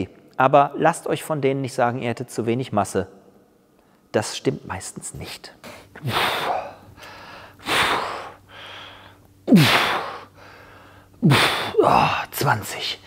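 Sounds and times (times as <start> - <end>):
man exhaling forcefully: 6.0 - 12.2
man grunting: 11.2 - 12.4.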